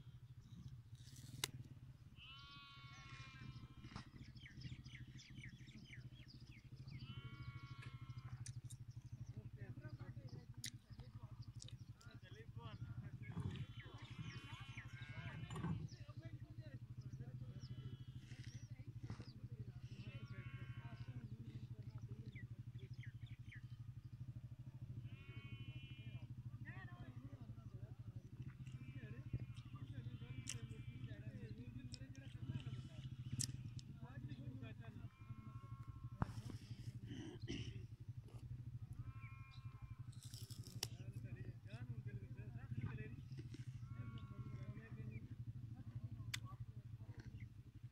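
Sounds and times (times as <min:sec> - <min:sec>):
small engine idling: 0:00.0 - 0:47.9
livestock bleating: 0:02.1 - 0:04.1, 0:06.9 - 0:08.6, 0:13.4 - 0:15.9, 0:17.4 - 0:18.4, 0:19.8 - 0:21.4, 0:24.9 - 0:26.4, 0:28.4 - 0:33.9, 0:34.8 - 0:38.0, 0:38.8 - 0:41.0, 0:43.4 - 0:45.0.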